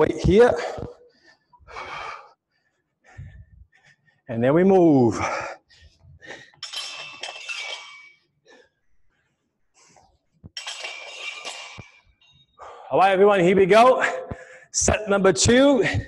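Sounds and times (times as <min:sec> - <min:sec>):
weight plates scraping and clinking: 0:06.5 - 0:08.2, 0:10.5 - 0:12.5.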